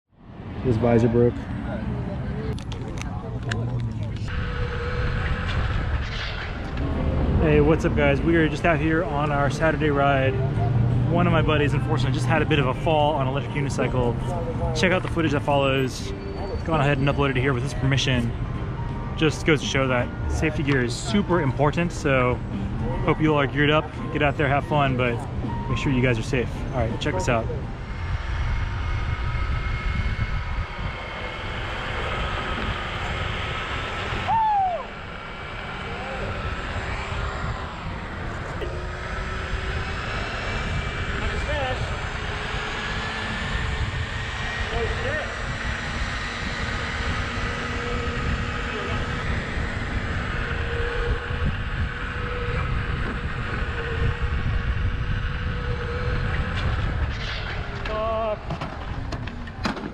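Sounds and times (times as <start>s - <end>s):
electric motor whine: 2.3s - 59.6s
wind buffeting microphone: 24.7s - 59.9s.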